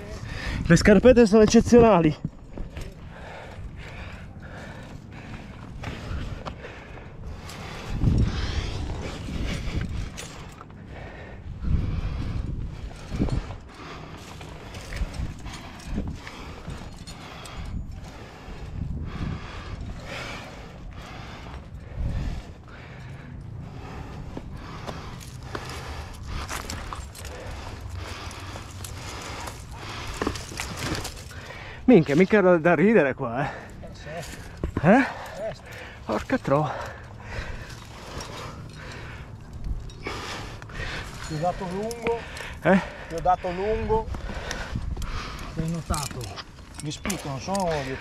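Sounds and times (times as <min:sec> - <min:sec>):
climbing gear scraping on rock: 0:00.0 - 0:48.0.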